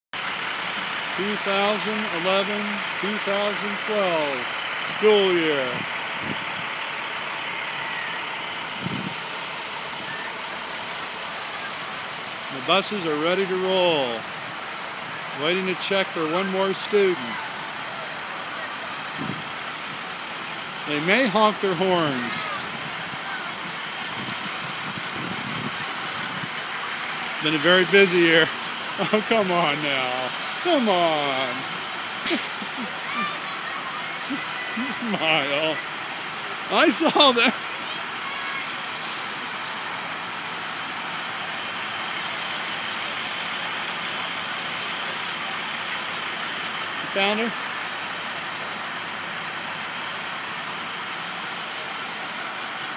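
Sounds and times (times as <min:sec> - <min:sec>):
buses idling: 0:00.2 - 0:52.9.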